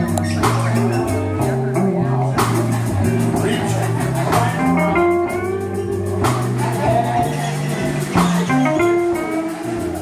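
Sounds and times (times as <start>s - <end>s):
bass line: 0.0s - 10.0s
drum kit: 0.0s - 10.0s
electric guitar: 0.0s - 10.0s.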